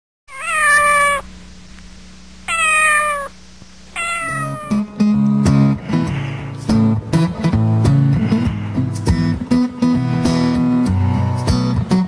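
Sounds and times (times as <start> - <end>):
cat meowing: 0.3 - 1.3, 2.5 - 4.9.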